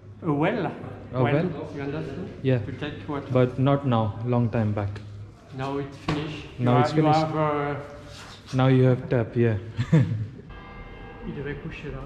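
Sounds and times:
church bell ringing: 0:10.5 - 0:12.0.

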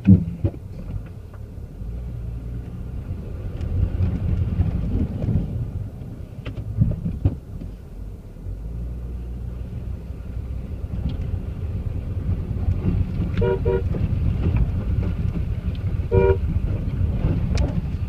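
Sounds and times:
car engine low rumble: 0:00.0 - 0:18.0.

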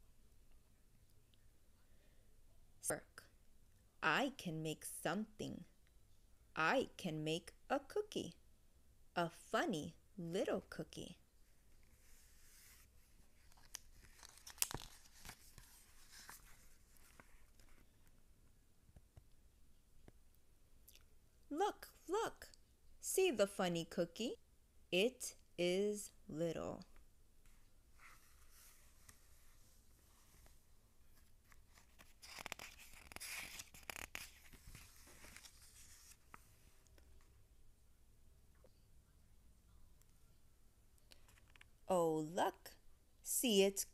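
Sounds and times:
soft paper rustle: 0:11.4 - 0:19.3, 0:27.4 - 0:37.4, 0:41.1 - 0:41.8.

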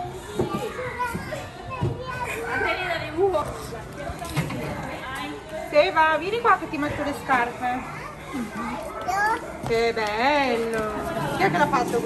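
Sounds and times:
young children chattering: 0:00.0 - 0:12.0
people talking: 0:09.7 - 0:12.0.

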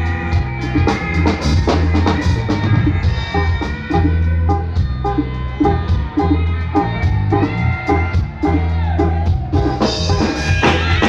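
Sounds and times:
bass guitar: 0:00.0 - 0:11.0
drum kit beat: 0:00.0 - 0:11.0
electric guitar: 0:00.0 - 0:11.0.

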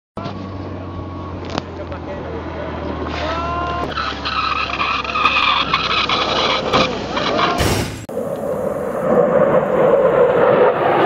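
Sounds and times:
propeller engine drone: 0:08.1 - 0:11.0.

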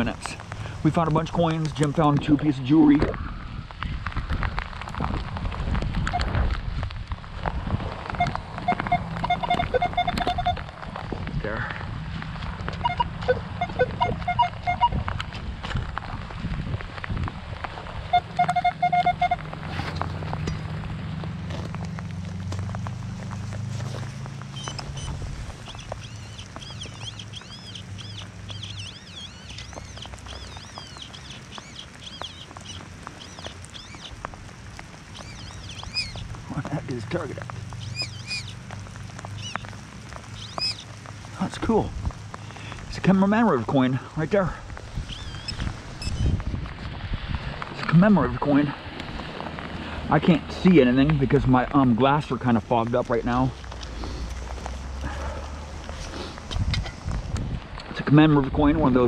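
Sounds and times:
crunching wood-chip mulch: 0:03.9 - 0:59.0
metal detector target tones: 0:18.1 - 0:19.4
digging in mulch: 0:48.6 - 0:57.6.

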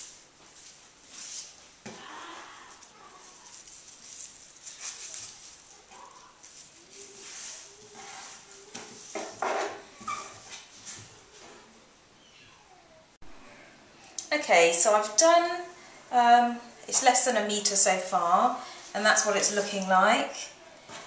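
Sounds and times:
cloth strips rustling and sliding: 0:00.0 - 0:01.8, 0:02.8 - 0:09.3.

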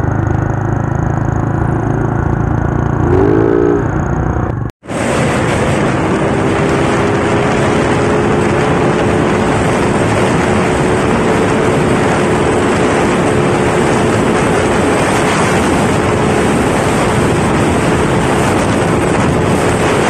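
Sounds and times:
high scooter engine drone: 0:00.0 - 0:20.0
wind rush on microphone: 0:02.2 - 0:20.0.

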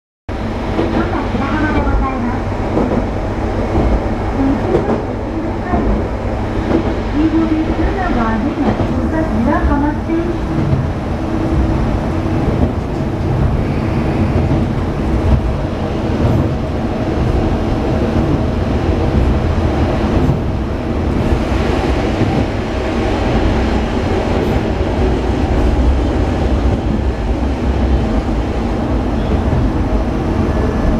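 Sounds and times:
train engine and wheels rumbling: 0:00.3 - 0:30.9.

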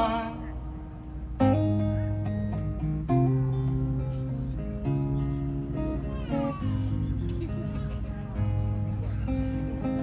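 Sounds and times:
acoustic guitar: 0:00.0 - 0:10.0
high voice-like cry: 0:06.0 - 0:07.2.

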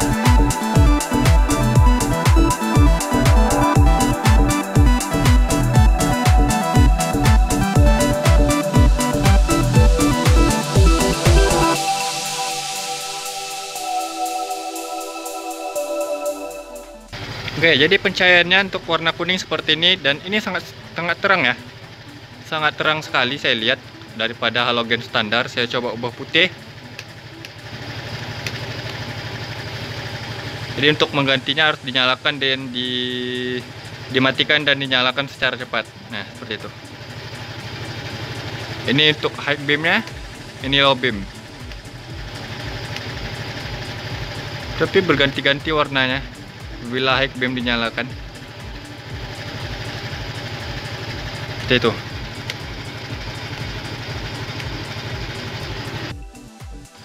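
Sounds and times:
vehicle engine idling: 0:00.0 - 0:14.0, 0:17.0 - 0:57.0.

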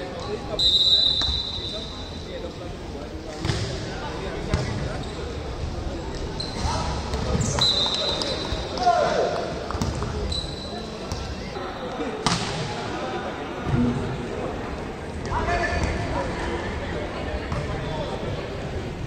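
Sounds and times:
referee whistle blasts: 0:00.6 - 0:02.2, 0:07.4 - 0:08.7.

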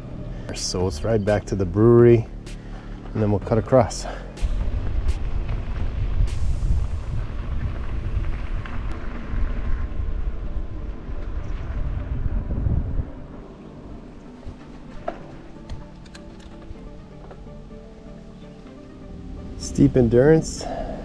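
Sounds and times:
wind buffeting microphone: 0:00.9 - 0:17.1
bike rolling over gravel: 0:03.0 - 0:17.4.

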